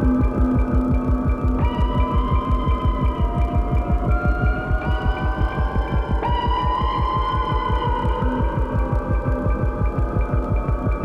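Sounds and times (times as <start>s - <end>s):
low throbbing pulse: 0.0s - 11.0s.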